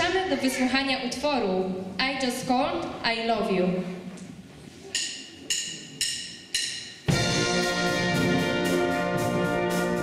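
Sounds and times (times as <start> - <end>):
sharp percussion clicks: 5.0 - 7.1.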